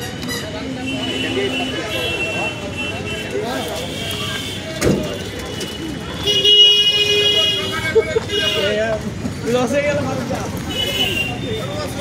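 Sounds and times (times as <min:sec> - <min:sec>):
street traffic: 0:00.0 - 0:12.0
voices of market crowd: 0:00.0 - 0:12.0
vehicle horn: 0:05.5 - 0:08.8.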